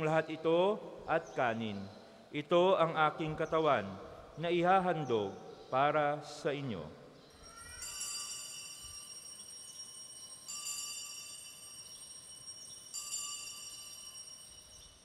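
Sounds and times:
altar bells ringing: 7.2s - 15.0s.

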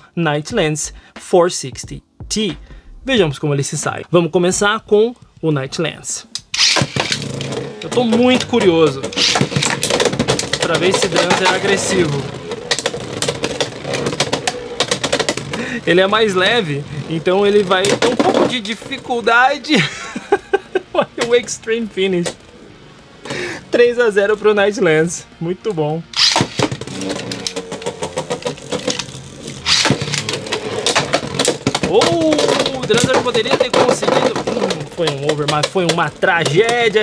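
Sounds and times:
spinning tops whirring: 6.3s - 20.3s, 26.1s - 37.0s
tops clicking and rattling: 6.3s - 23.4s, 26.2s - 37.0s.

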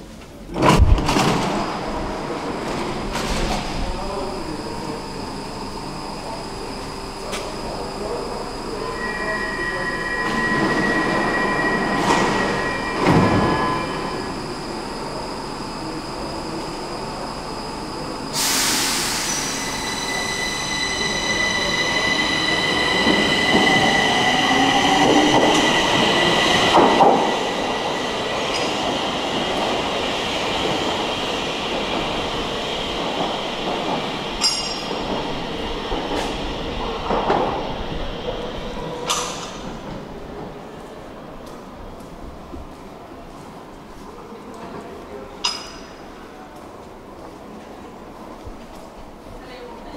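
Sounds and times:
train hiss: 18.0s - 24.1s.

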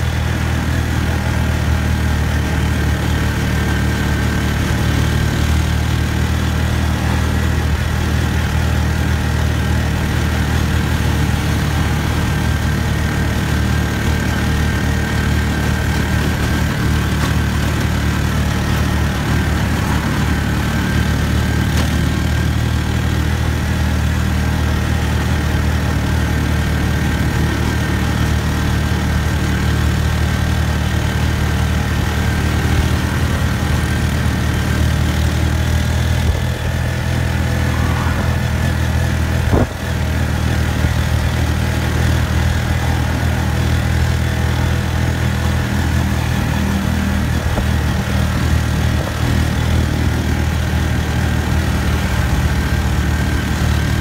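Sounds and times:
road noise: 0.0s - 54.0s
vehicle engine droning: 0.0s - 54.0s.

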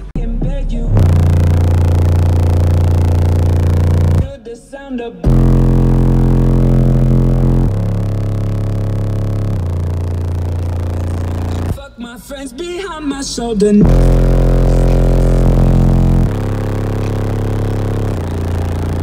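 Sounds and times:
bass-heavy music from subwoofers: 0.0s - 19.0s.

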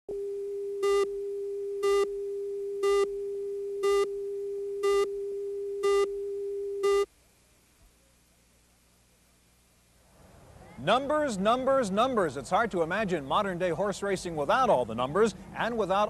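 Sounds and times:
steady electronic tone: 0.2s - 7.1s
countdown beeps: 2.8s - 3.1s, 3.8s - 4.1s, 4.8s - 5.1s, 5.8s - 6.1s, 6.8s - 7.1s.

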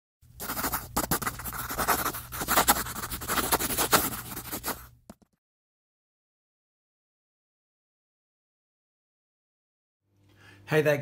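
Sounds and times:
pencil scratching on paper: 0.4s - 5.3s.

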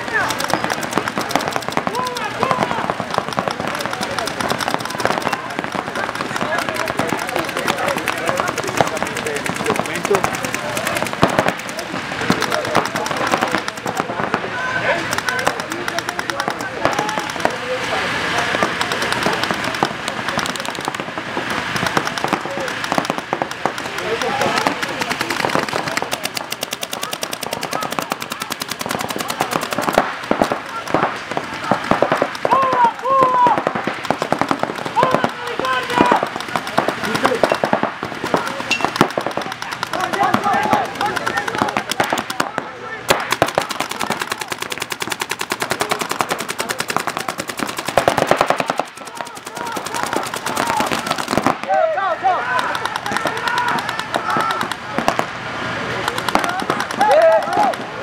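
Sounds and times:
paintball markers firing rapidly: 0.0s - 55.3s, 56.0s - 58.0s.

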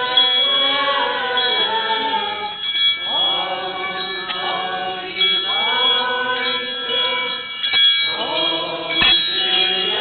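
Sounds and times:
group singing a hymn: 0.0s - 10.0s.

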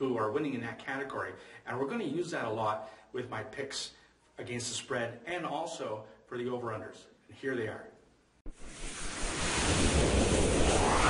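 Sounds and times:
whoosh with rising sweep: 8.5s - 11.0s.

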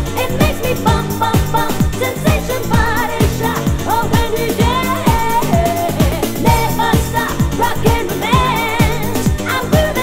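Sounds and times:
house music kick drum: 0.0s - 10.0s
person singing: 0.0s - 10.0s.

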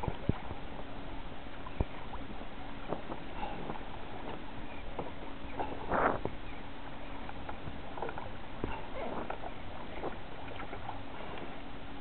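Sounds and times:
water splashing against kayak: 0.0s - 12.0s.

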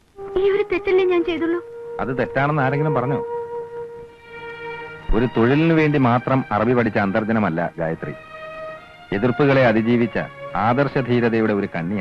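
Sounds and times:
man speaking: 2.0s - 3.2s, 5.1s - 8.2s, 9.1s - 12.0s.

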